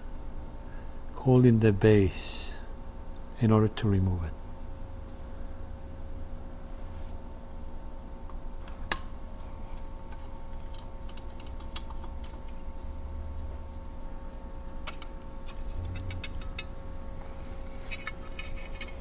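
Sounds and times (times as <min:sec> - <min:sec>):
faint steady hum: 0:00.0 - 0:19.0
metallic clicks of hand tools: 0:14.8 - 0:16.8.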